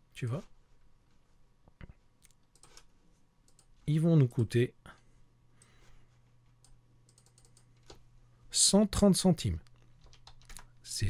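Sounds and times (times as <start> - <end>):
man talking: 0.2 - 0.5, 3.8 - 5.0, 8.5 - 9.7
computer mouse clicks: 2.2 - 3.8, 6.6 - 8.0.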